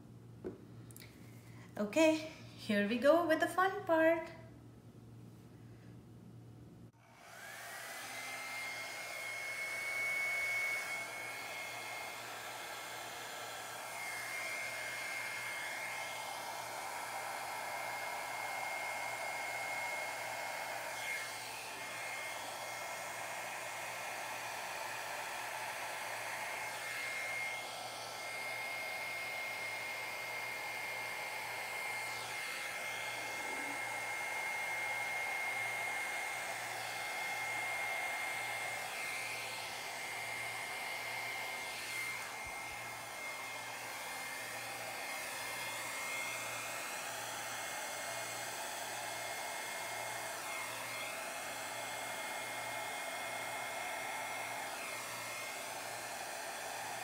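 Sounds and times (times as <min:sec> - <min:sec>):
hair dryer running: 0:07.0 - 0:57.0.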